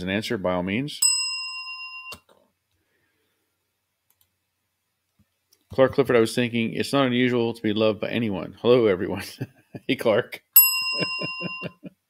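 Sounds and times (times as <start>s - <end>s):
bell-like chime: 1.0s - 2.2s, 10.6s - 11.9s.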